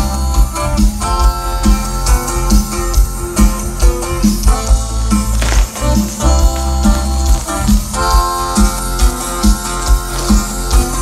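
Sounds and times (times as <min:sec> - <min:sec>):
live band playing over speakers: 0:00.0 - 0:11.0.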